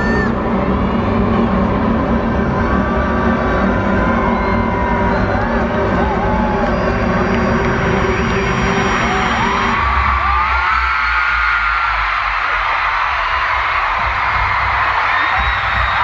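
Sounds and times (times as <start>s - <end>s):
crowd screaming and whooping: 0.0s - 16.0s
loud amplified music: 0.0s - 16.0s.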